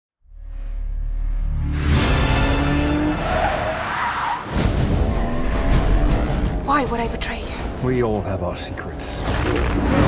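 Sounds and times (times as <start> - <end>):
music: 0.2 - 3.6, 4.4 - 10.0
car engine: 1.6 - 6.5.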